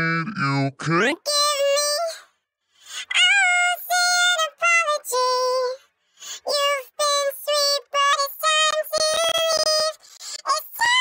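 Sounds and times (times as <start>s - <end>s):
pitch-shifted woman singing: 1.2s - 2.3s, 2.9s - 11.0s.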